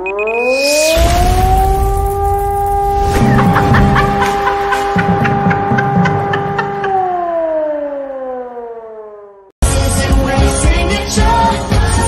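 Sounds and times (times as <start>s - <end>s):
air-raid siren: 0.0s - 9.6s.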